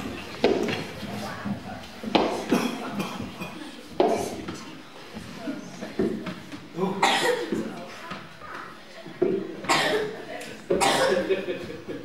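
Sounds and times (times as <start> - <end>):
murmur of voices: 0.0 - 12.0
person coughing harshly: 7.0 - 7.6, 9.7 - 10.2, 10.8 - 11.3.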